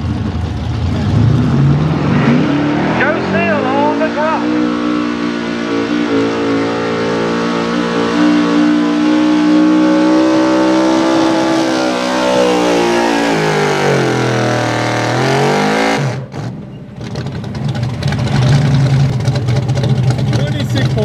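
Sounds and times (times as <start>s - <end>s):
truck engine revving: 0.0s - 21.0s.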